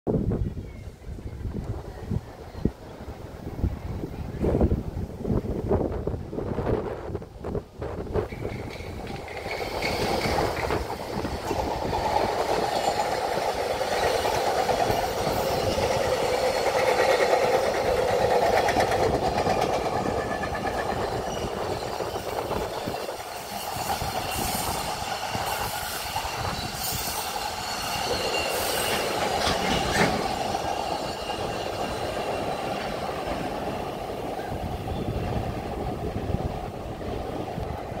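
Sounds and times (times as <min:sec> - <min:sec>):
train wheels clattering over rail joints: 0:08.2 - 0:35.0
high wheel squeals: 0:08.3 - 0:18.0, 0:19.2 - 0:33.8.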